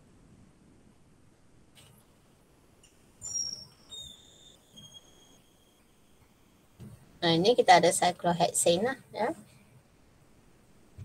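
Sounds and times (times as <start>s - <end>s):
faint room noise: 0.0s - 11.0s
high-pitched chirping tones: 3.2s - 5.9s.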